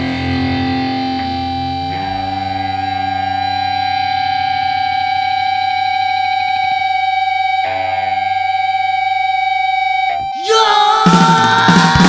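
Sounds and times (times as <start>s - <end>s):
electric guitar feedback drone: 0.0s - 12.0s
punk band with drums: 10.4s - 12.0s.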